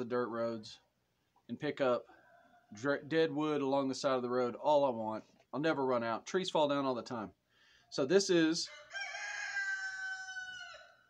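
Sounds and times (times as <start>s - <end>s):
rooster crowing: 8.7s - 11.0s.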